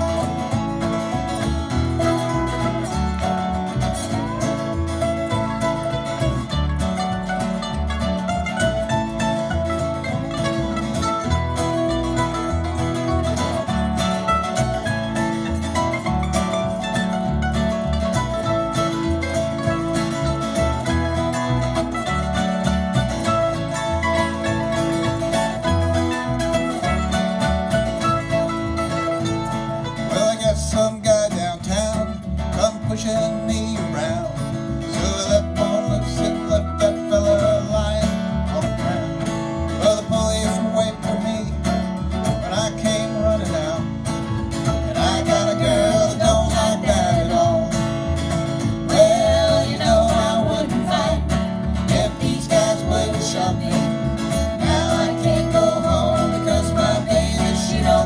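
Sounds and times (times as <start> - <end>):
acoustic string band playing: 0.0 - 58.0
upright bass pulse: 0.0 - 58.0.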